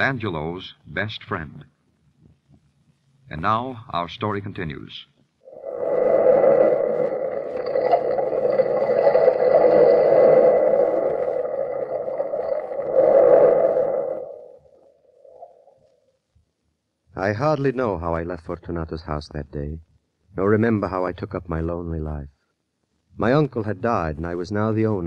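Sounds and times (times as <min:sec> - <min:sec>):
sea surf rushing: 0:05.5 - 0:14.6.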